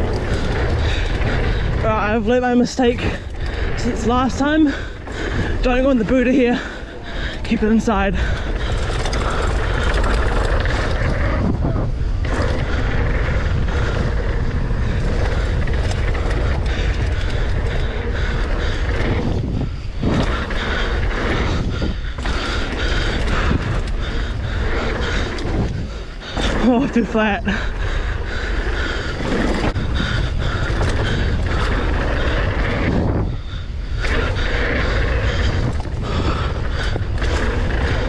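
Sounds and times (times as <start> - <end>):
bike rattling over bumps: 0.0 - 38.0
bike tyres skidding on dirt: 0.0 - 38.0
wind on microphone: 0.0 - 38.0.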